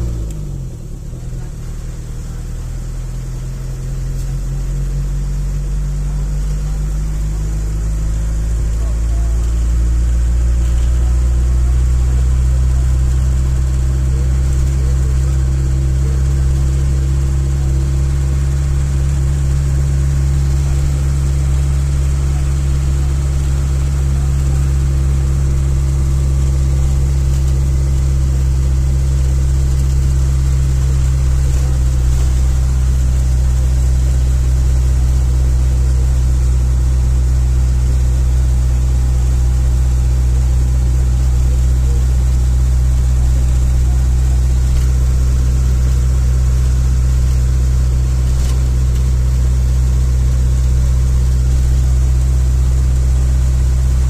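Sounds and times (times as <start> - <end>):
bus engine drone: 0.0 - 54.0
road noise: 0.0 - 54.0.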